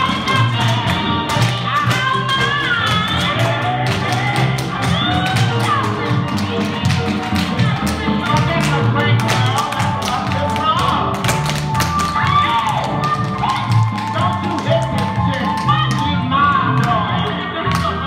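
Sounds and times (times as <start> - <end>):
pop song: 0.0 - 18.0.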